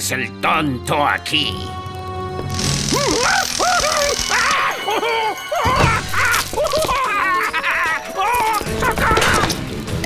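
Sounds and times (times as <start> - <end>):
background music: 0.0 - 10.0
cartoon cries: 2.9 - 9.5.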